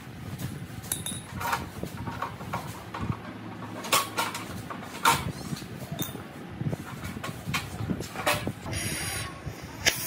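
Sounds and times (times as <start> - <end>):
rusty steel knocking and scraping: 0.9 - 8.7.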